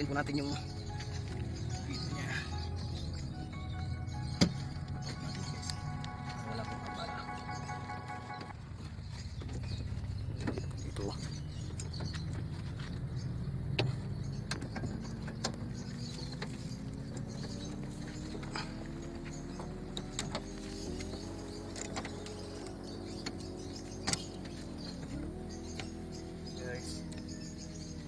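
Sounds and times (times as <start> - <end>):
engine running: 0.0 - 28.0.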